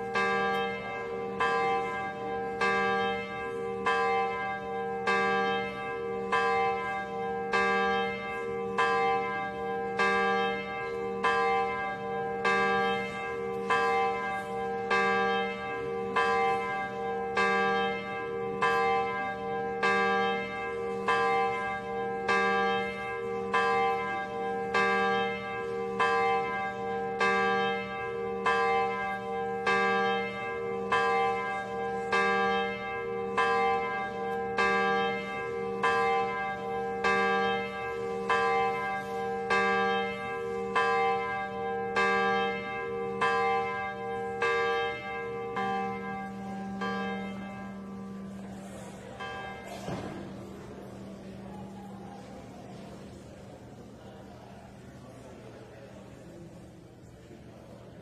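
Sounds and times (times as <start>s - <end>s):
church bell tolling: 0.0s - 56.5s.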